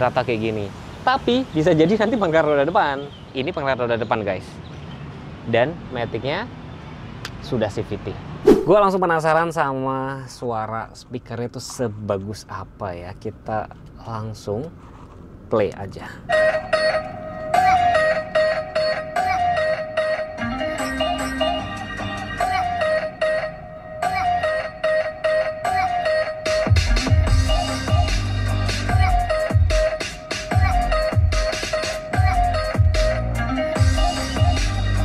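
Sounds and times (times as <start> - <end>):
electronic dance music in car: 26.3 - 35.0
heavy bass: 26.8 - 29.9, 32.3 - 35.0.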